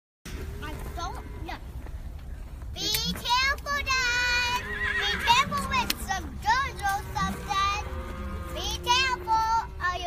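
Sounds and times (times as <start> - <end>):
girls calling out and squealing: 3.9 - 7.6.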